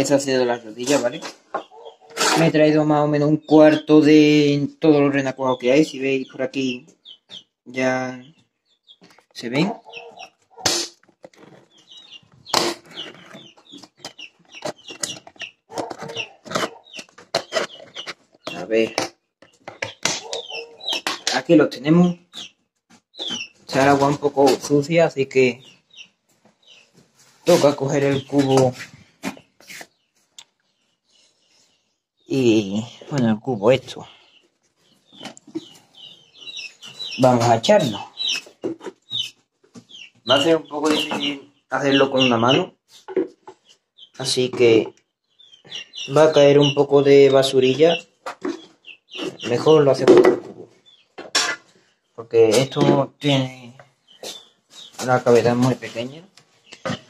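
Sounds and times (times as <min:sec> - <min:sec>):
chicks peeping: 0:00.0 - 0:57.0
plastic container knocks and scrapes: 0:49.2 - 0:51.6.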